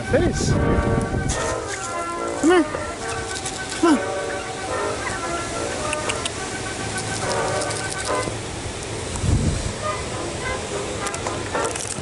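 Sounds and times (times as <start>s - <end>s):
turkeys calling: 1.6s - 8.4s.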